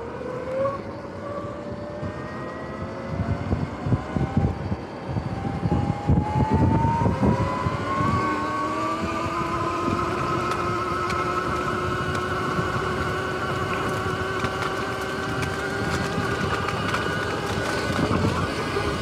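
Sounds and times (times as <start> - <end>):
electric motor whining: 0.0 - 19.0
wind rumbling on microphone: 0.0 - 19.0.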